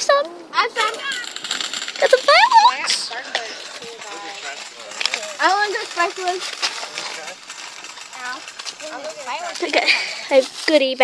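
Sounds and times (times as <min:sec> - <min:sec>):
people talking in background: 0:00.0 - 0:11.0.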